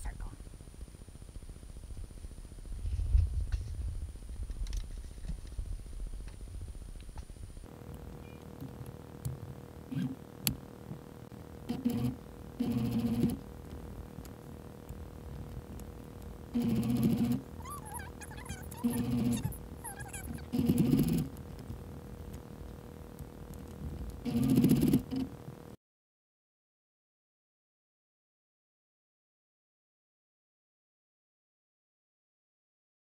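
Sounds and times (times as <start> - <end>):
sewing machine stitching: 11.7 - 13.4, 16.6 - 21.3, 24.2 - 25.3.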